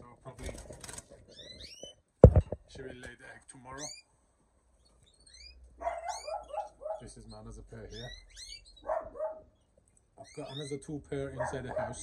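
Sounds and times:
canaries chirping: 0:00.0 - 0:02.1, 0:03.6 - 0:04.1, 0:04.8 - 0:12.0.

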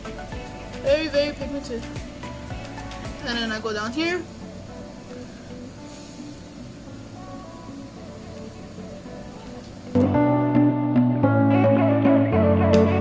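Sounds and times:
background music with held bass: 0:00.0 - 0:13.0.

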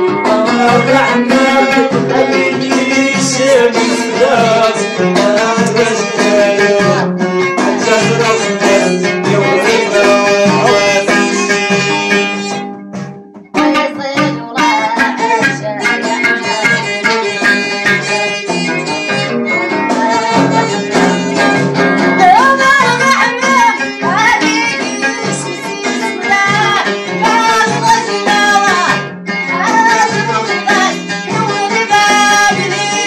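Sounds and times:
person singing: 0:00.0 - 0:12.7, 0:13.6 - 0:33.0
frame drums: 0:00.0 - 0:33.0
plucked lute: 0:00.0 - 0:33.0.

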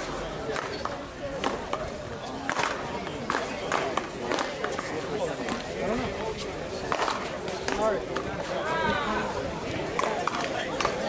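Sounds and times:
chatter of players: 0:00.0 - 0:11.0.

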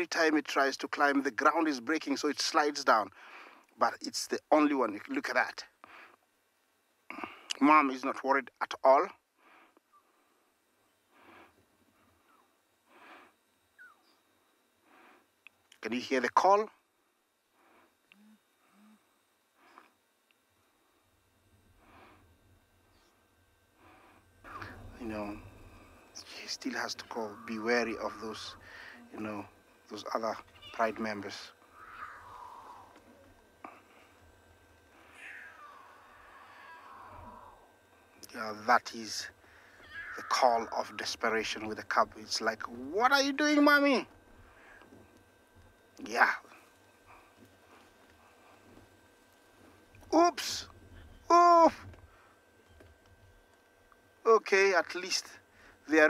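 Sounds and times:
lion cub calling: 0:12.2 - 0:12.6, 0:13.7 - 0:14.2, 0:24.4 - 0:25.6, 0:26.7 - 0:29.2, 0:30.3 - 0:33.4, 0:35.0 - 0:37.7, 0:39.7 - 0:41.8
lion cub mewing: 0:13.8 - 0:14.2, 0:24.4 - 0:25.8, 0:30.4 - 0:34.1, 0:35.0 - 0:37.7, 0:39.6 - 0:41.6.

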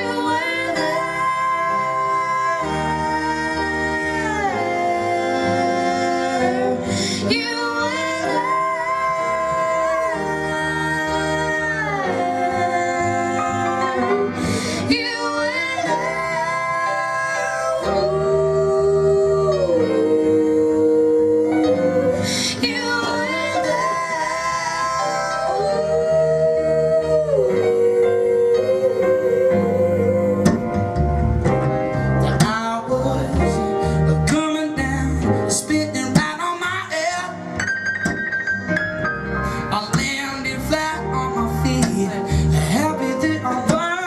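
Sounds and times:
woman and man singing harmony: 0:00.0 - 0:30.9
plucked upright bass: 0:29.6 - 0:36.6.

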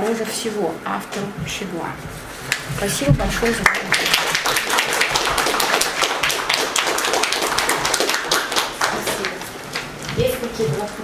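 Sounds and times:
audience applauding: 0:03.4 - 0:09.9.

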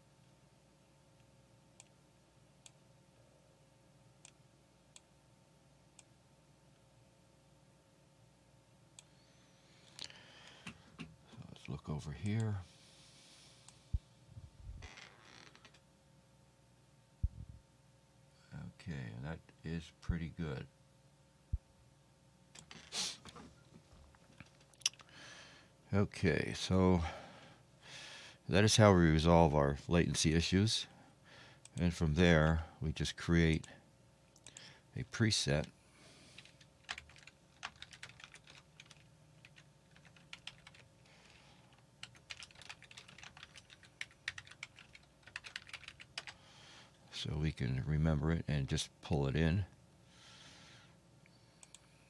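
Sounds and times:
faint breath: 0:09.1 - 0:11.0, 0:12.6 - 0:14.0, 0:25.1 - 0:25.8, 0:27.0 - 0:28.4, 0:30.9 - 0:31.6, 0:34.5 - 0:34.9, 0:35.8 - 0:36.6, 0:46.3 - 0:47.0, 0:50.0 - 0:52.0
faint keyboard typing: 0:24.1 - 0:25.1, 0:36.3 - 0:46.4.

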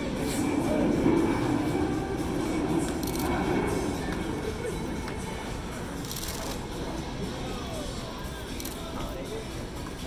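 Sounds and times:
steady low rumble: 0:00.0 - 0:08.7.

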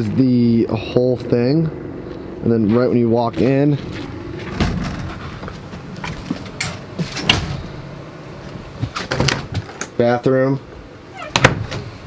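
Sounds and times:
low handling noise: 0:00.0 - 0:10.1
footsteps: 0:02.0 - 0:07.6, 0:08.4 - 0:09.8
door: 0:09.0 - 0:09.7, 0:11.2 - 0:12.0.

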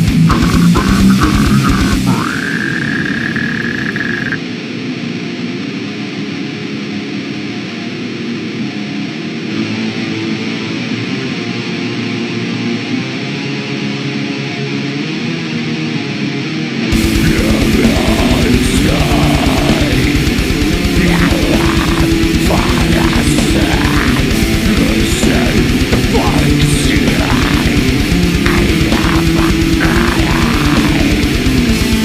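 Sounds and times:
deathcore metal song: 0:00.0 - 0:32.0.

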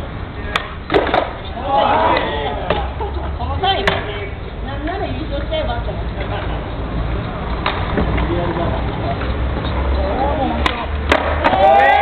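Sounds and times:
skateboard clacking: 0:00.4 - 0:12.0.

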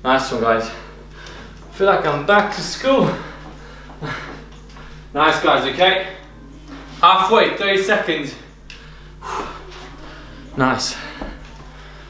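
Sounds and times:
man speaking: 0:00.0 - 0:01.0, 0:01.7 - 0:03.4, 0:05.1 - 0:06.3, 0:07.0 - 0:08.5, 0:10.5 - 0:11.3
steady low hum: 0:00.0 - 0:12.0.

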